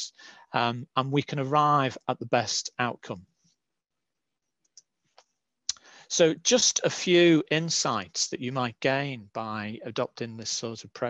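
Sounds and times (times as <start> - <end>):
person speaking: 0.0 - 3.2, 5.7 - 11.0
short breath: 0.1 - 0.5, 5.7 - 6.1.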